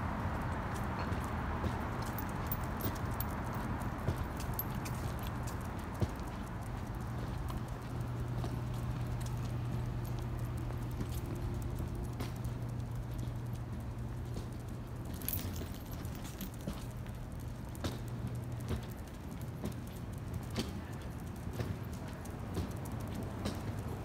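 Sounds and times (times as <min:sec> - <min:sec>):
steady low hum: 0:00.0 - 0:24.0
footsteps on concrete: 0:00.3 - 0:24.0.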